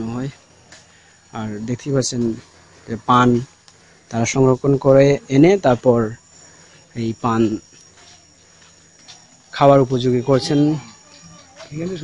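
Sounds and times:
man speaking: 0.0s - 0.4s, 1.3s - 3.5s, 4.1s - 6.2s, 7.0s - 7.6s, 9.6s - 11.0s, 11.6s - 12.0s
high-pitched insect trill: 0.0s - 12.0s.

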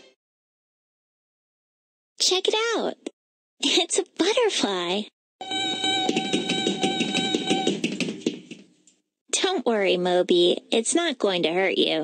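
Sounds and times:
robot electronic beeping: 5.4s - 7.8s.

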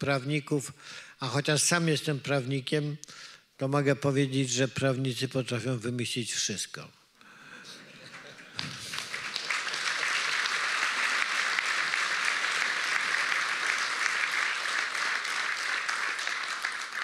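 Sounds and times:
audience applauding: 8.0s - 17.0s.

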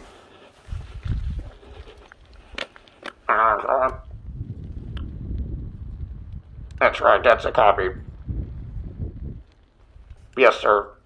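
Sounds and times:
wind noise on microphone: 0.6s - 11.0s.

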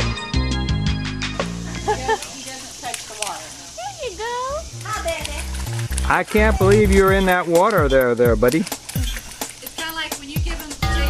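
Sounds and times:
keyboard music: 0.0s - 2.2s, 4.7s - 11.0s.

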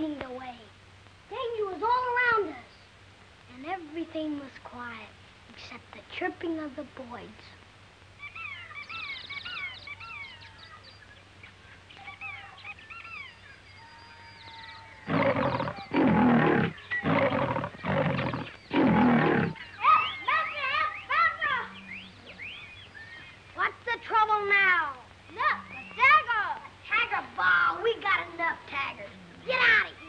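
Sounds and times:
jungle birds chirping: 0.4s - 3.8s, 6.6s - 30.0s
tiger roaring: 15.0s - 19.6s.

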